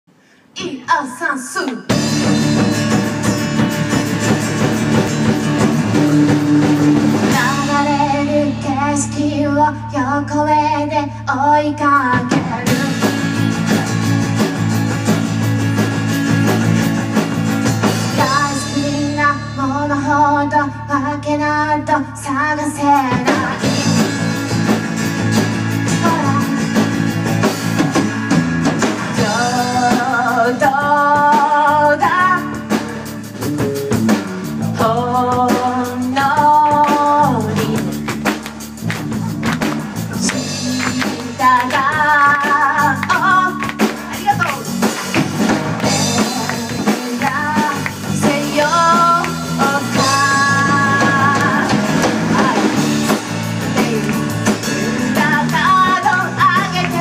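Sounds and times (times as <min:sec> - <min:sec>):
live rock band playing: 0:01.8 - 0:21.7, 0:22.3 - 0:57.0
drum hits: 0:01.9 - 0:08.0, 0:36.4 - 0:57.0
acoustic guitar: 0:01.9 - 0:10.0, 0:11.9 - 0:21.1, 0:22.2 - 0:57.0
electric bass: 0:01.9 - 0:57.0
woman singing: 0:06.3 - 0:14.0, 0:18.0 - 0:24.1, 0:25.8 - 0:26.9, 0:29.1 - 0:33.1, 0:34.6 - 0:38.0, 0:40.1 - 0:44.8, 0:45.8 - 0:57.0.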